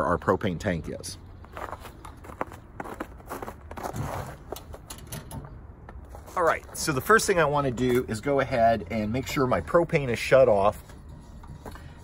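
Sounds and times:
footsteps on snow: 1.4s - 4.5s, 6.0s - 7.1s.

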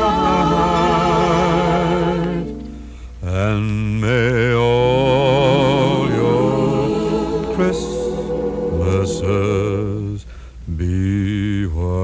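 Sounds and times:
person singing with vibrato: 0.0s - 11.4s
sustained low accompaniment: 4.7s - 10.3s.

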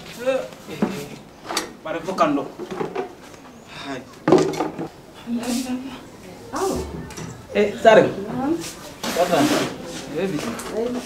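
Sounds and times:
sharp knock: 6.7s - 8.0s.

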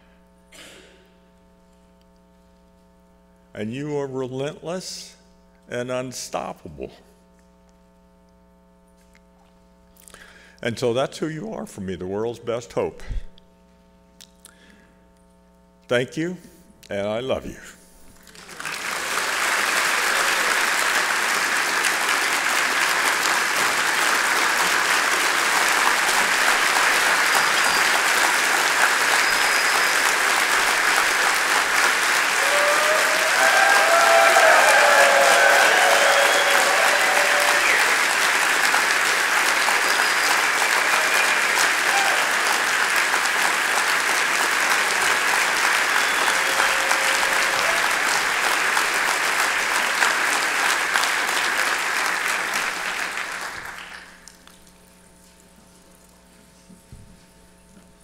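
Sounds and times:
large audience applauding: 18.2s - 54.6s.

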